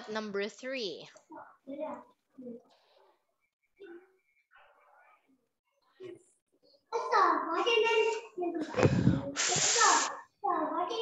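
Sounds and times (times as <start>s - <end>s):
short hiss: 8.8s - 10.2s.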